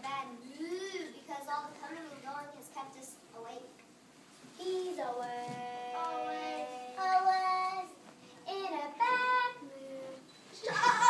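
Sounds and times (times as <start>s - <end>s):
child singing long notes: 5.2s - 10.2s.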